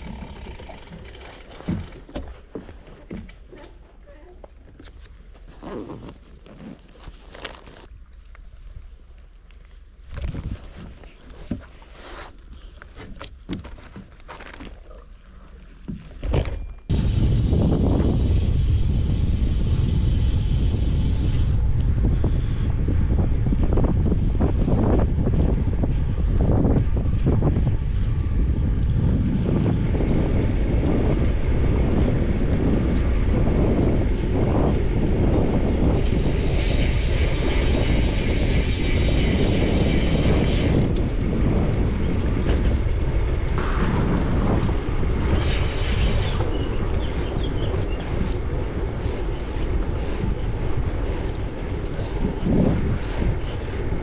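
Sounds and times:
wind buffeting microphone: 16.4s - 54.0s.

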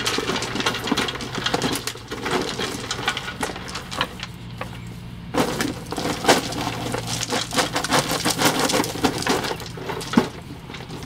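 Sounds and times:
gravel pouring and rattling: 0.0s - 4.6s, 5.3s - 11.0s.

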